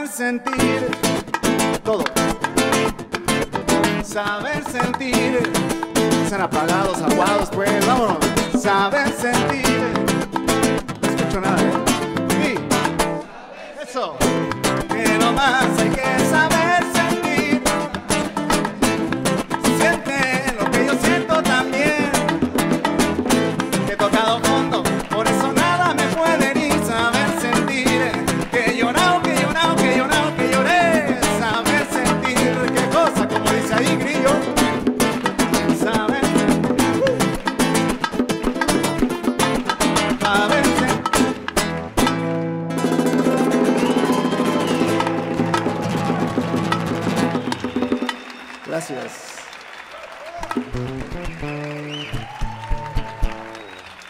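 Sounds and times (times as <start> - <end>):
acoustic guitar: 0.0 - 13.5, 14.2 - 48.4, 50.4 - 53.9
bongos drumming: 0.4 - 13.2, 14.3 - 48.4, 50.3 - 53.6.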